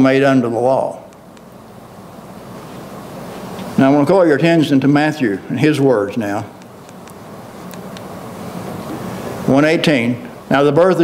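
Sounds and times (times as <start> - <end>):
soft even hiss: 0.0 - 11.0.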